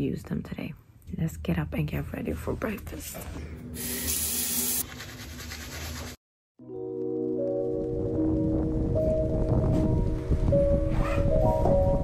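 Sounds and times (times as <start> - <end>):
shower spraying water: 3.8 - 4.8.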